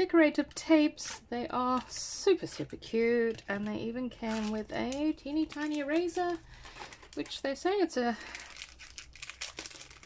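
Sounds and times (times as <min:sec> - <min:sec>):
plastic packaging crinkling: 0:01.0 - 0:10.0.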